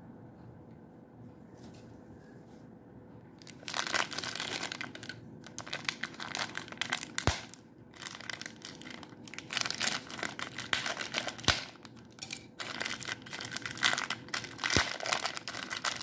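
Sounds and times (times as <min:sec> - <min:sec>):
plastic bag crinkling: 0:03.4 - 0:16.0.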